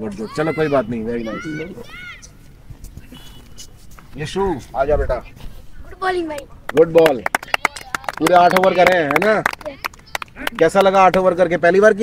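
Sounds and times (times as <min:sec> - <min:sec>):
boys talking: 0:00.0 - 0:12.0.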